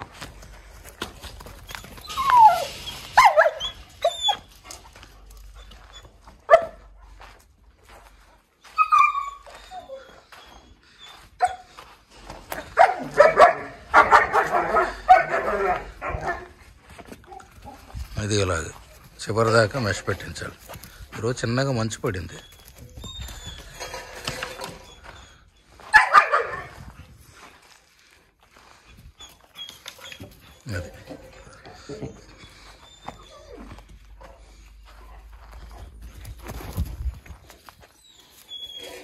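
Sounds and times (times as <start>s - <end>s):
dog whining: 1.6s - 4.8s, 8.8s - 11.7s, 22.4s - 25.6s, 29.2s - 34.2s, 38.0s - 39.0s
dog yelping: 1.6s - 7.0s, 8.8s - 11.7s, 12.5s - 16.6s, 22.4s - 26.8s, 29.2s - 34.0s
dog barking: 6.5s - 6.8s, 12.8s - 16.6s, 25.9s - 26.8s.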